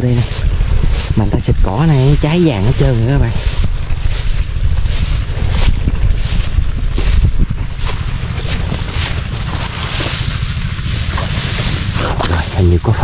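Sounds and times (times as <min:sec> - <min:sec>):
dry grass rustling underfoot: 0:00.0 - 0:13.0
wind buffeting microphone: 0:00.0 - 0:13.0.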